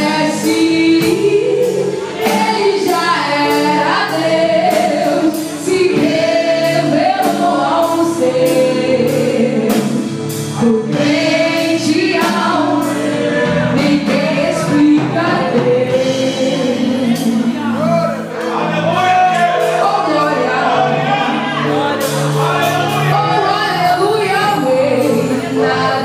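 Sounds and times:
woman singing into a microphone: 0:00.0 - 0:17.8, 0:19.7 - 0:21.0, 0:23.1 - 0:26.0
steady drum strokes: 0:00.0 - 0:20.4
band playing: 0:00.0 - 0:26.0
congregation singing: 0:00.0 - 0:26.0.

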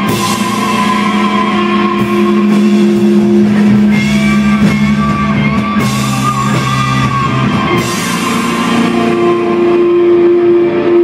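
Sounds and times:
electric guitars holding a note: 0:00.0 - 0:11.0.

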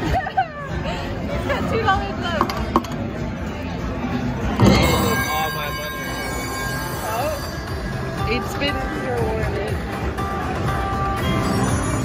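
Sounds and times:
casino crowd chatter: 0:00.0 - 0:12.0
slot machine chimes and jingles: 0:04.6 - 0:08.9, 0:11.2 - 0:12.0.

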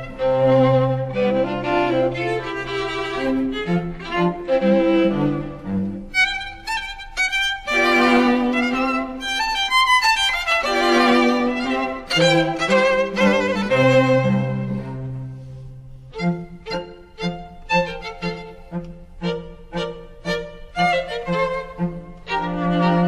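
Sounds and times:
cellos and low strings: 0:00.0 - 0:23.0
violin melody with vibrato: 0:00.0 - 0:23.0.

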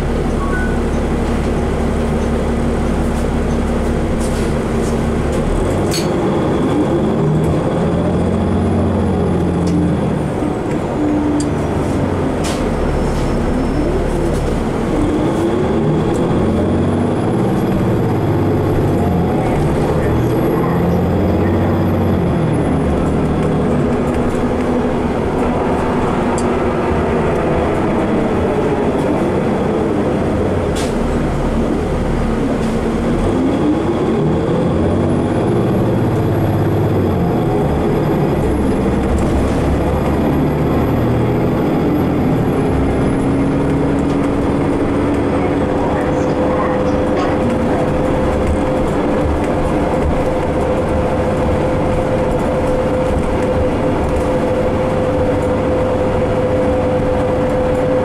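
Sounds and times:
bus engine running: 0:00.0 - 0:58.0.

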